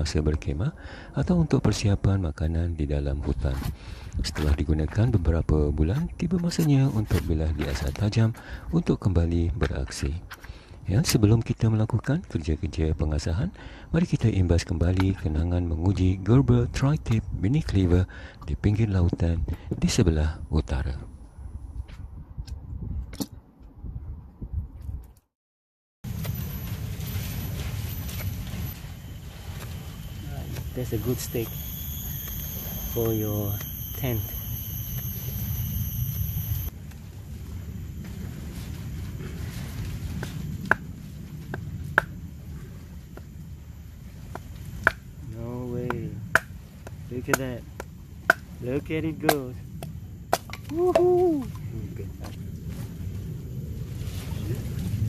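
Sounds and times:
low rumble: 26.1s - 55.0s.

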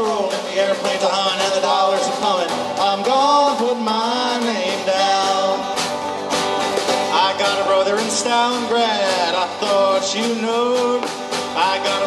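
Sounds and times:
snare drum: 0.0s - 12.0s
strummed acoustic guitar: 0.0s - 12.0s
voices singing: 0.0s - 12.0s.

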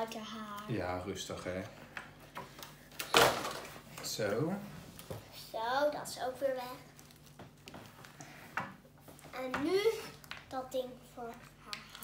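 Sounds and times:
packaging rustles: 6.8s - 8.2s.

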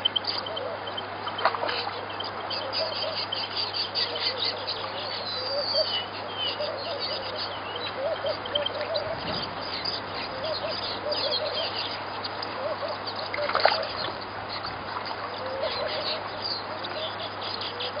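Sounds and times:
birds chirping: 0.0s - 18.0s
lower repeated bird call: 0.0s - 18.0s.

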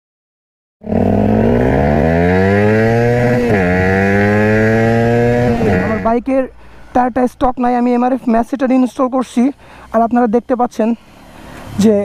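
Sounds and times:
motorcycle engine accelerating: 0.8s - 6.2s.

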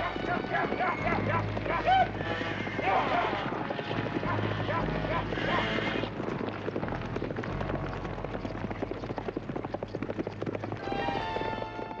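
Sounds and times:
film score music: 0.0s - 12.0s
hooves pounding dirt: 0.0s - 12.0s.

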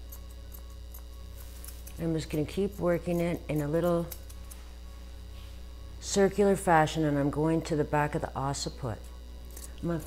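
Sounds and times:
shears snipping: 0.0s - 4.8s, 9.5s - 10.0s
steady low hum: 0.0s - 10.0s.

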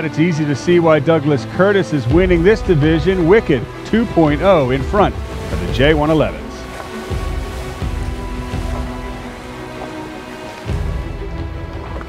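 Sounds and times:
background music with held notes: 0.0s - 12.0s
water noise: 0.0s - 12.0s
wind: 0.0s - 12.0s.

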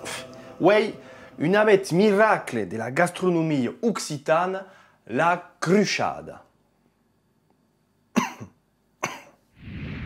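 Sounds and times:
man coughing: 8.2s - 9.4s.

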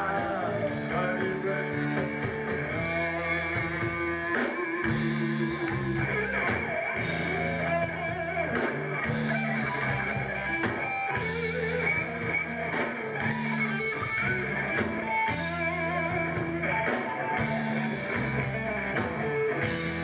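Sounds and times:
bass guitar: 0.0s - 20.0s
distorted electric guitars: 0.0s - 20.0s
drum kit: 0.0s - 20.0s.

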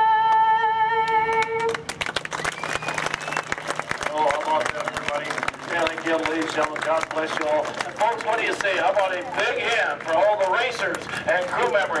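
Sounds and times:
crowd clapping and applause: 1.1s - 12.0s.

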